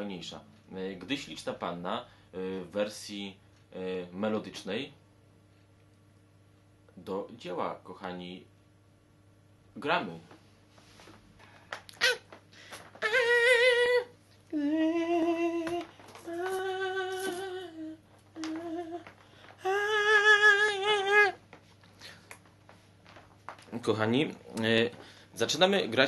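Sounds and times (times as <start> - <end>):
man singing wordless high notes: 13.0 - 19.0, 19.6 - 21.4.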